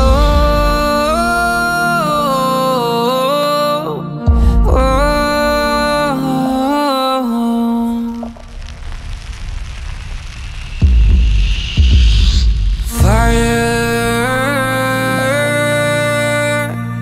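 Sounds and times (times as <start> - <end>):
deep booms: 0.0 - 1.8, 4.3 - 5.9, 8.1 - 14.6
male vocal harmonies: 0.0 - 8.4, 12.8 - 17.0.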